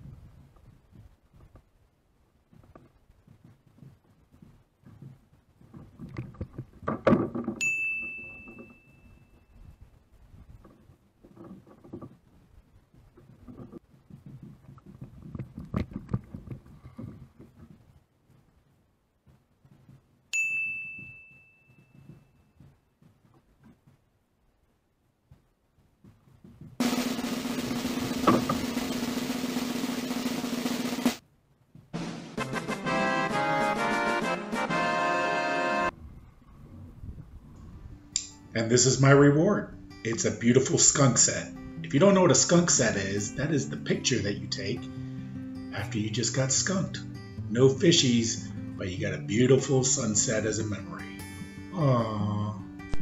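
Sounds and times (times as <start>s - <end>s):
bright ringing tones: 7.6s - 9.6s, 20.3s - 22.6s
cast net rustling and clattering: 10.5s - 12.3s
snare drum roll: 26.8s - 31.2s, 32.0s - 34.8s.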